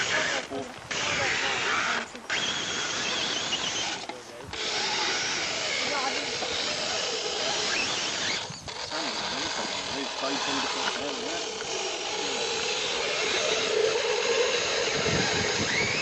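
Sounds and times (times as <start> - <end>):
toy car electric motor and gears: 0.0 - 16.0.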